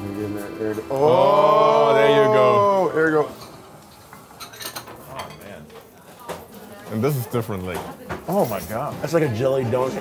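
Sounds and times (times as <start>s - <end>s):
plates and cutlery clinking: 3.3s - 10.0s.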